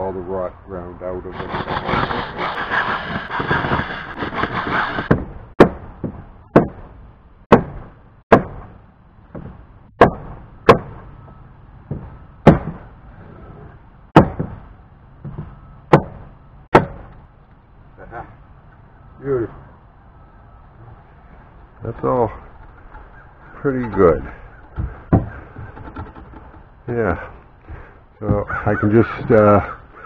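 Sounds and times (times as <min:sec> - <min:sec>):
hammer striking wooden board: 0:01.7 - 0:06.9, 0:07.5 - 0:11.0, 0:11.9 - 0:12.8, 0:14.2 - 0:17.1, 0:24.7 - 0:26.6.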